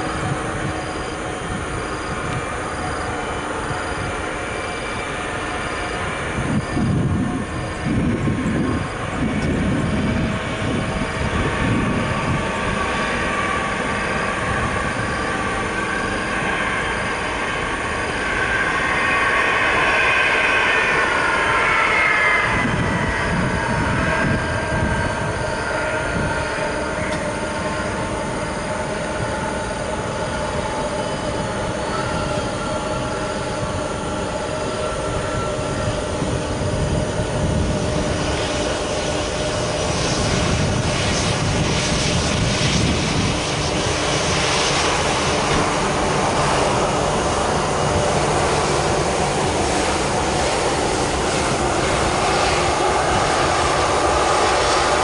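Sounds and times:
broad rushing noise: 0:00.0 - 0:55.0
jet engines whining: 0:00.0 - 0:55.0.

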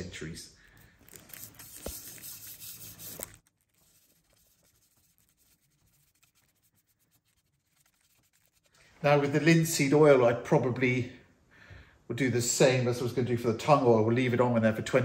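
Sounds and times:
brush bristles scratching: 0:01.1 - 0:08.8.

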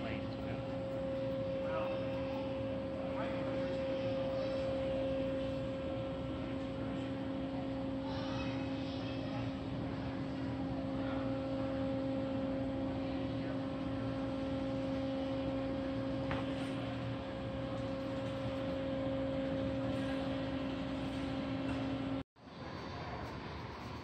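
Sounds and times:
low droning hum: 0:00.0 - 0:24.0.

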